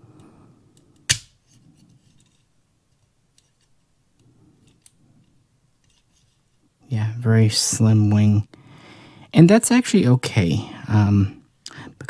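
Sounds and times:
soft handling rustle: 0.7s - 6.8s
plastic toy snapping: 1.0s - 1.3s.

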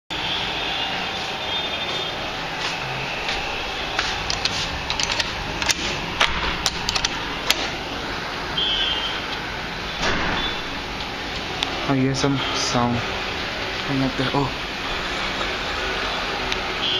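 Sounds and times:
rushing background noise: 0.1s - 16.9s
sharp clicks and knocks: 4.2s - 7.8s.

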